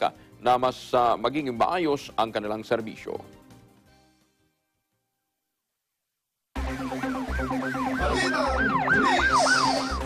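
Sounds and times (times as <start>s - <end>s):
electronic music with kick drum: 6.6s - 10.0s
yelping siren effect: 6.6s - 10.0s.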